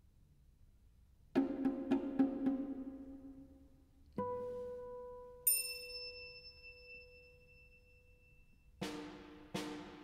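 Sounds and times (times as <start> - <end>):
ringing bell-like notes: 5.5 - 8.8.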